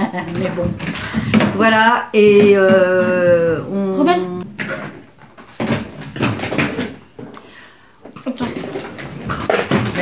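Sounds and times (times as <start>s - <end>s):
rustling and knocking: 0.1s - 7.4s, 8.0s - 10.0s.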